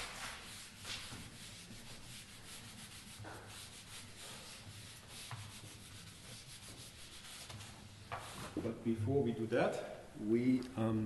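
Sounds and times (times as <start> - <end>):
eraser wiping whiteboard: 0.0 - 8.6.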